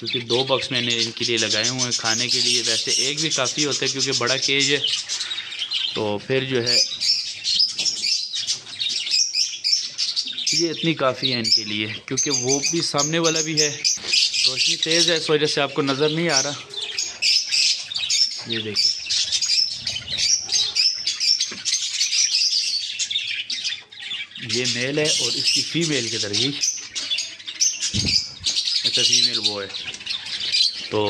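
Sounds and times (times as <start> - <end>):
budgerigars chattering: 0.0 - 31.0
parrots chirping: 0.0 - 31.0.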